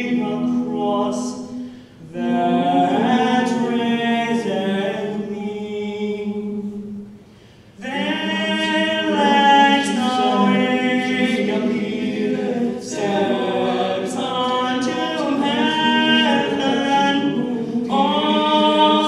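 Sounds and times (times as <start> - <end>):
male a cappella harmony singing: 0.0 - 7.0, 7.8 - 19.0.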